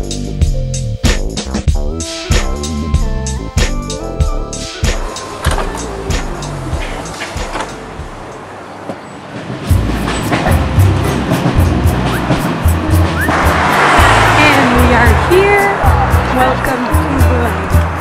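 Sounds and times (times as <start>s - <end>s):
acoustic guitar music with beat: 0.0s - 8.4s, 9.7s - 18.0s
vehicle noise: 2.8s - 18.0s
train noise: 3.9s - 18.0s.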